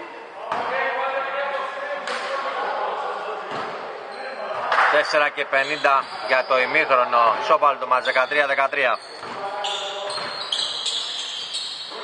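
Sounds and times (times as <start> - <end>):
basketball shoes squeaking: 5.6 - 6.7, 8.0 - 12.0.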